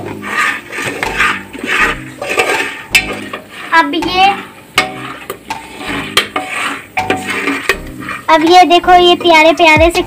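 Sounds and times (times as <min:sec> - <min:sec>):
spoon scraping in pot: 0:00.0 - 0:09.3.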